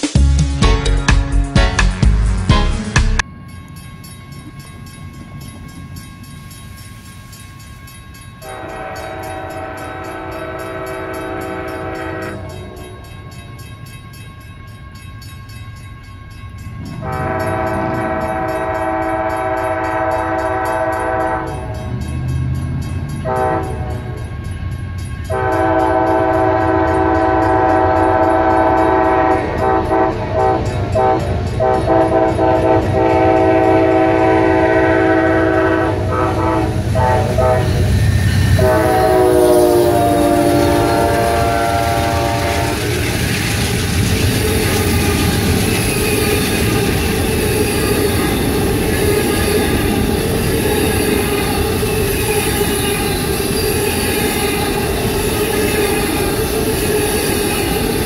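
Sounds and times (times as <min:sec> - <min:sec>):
train wheel noise: 0:03.0 - 0:58.0
locomotive air horn blasts: 0:08.4 - 0:12.8, 0:17.0 - 0:21.8, 0:23.2 - 0:24.2, 0:25.3 - 0:37.9, 0:38.5 - 0:43.0.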